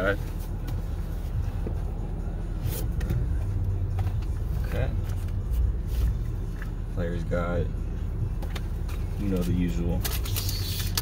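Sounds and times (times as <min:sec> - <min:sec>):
low rumble inside car: 0:00.0 - 0:11.0.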